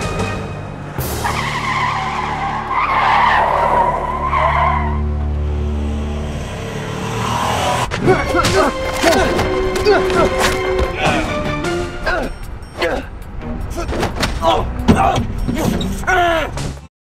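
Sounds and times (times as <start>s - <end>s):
tyres skidding and squealing: 0.0s - 16.8s
soundtrack music: 0.0s - 16.9s.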